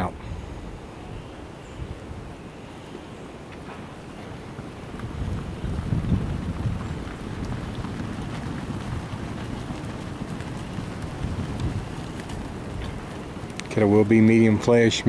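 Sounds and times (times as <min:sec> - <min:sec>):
wind buffeting microphone: 0:00.0 - 0:02.6, 0:03.3 - 0:15.0.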